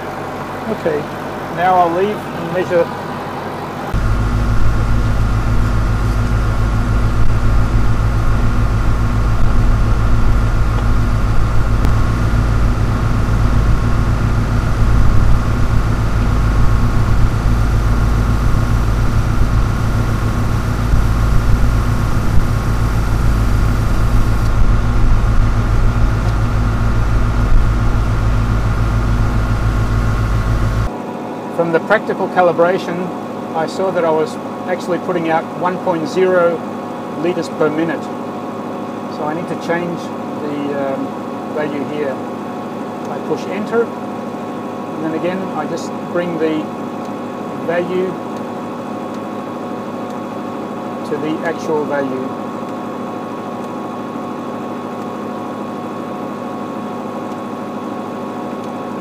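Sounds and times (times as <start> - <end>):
tractor engine droning: 0.0 - 59.0.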